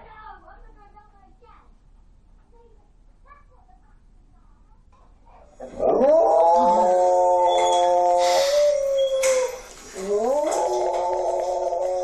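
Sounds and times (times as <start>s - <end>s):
large dog howling: 5.6s - 12.0s.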